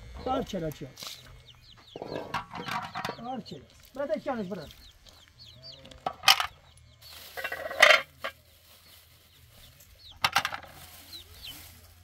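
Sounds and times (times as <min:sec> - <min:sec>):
metal pot clattering: 0:02.2 - 0:03.3, 0:07.4 - 0:08.4, 0:10.2 - 0:10.7.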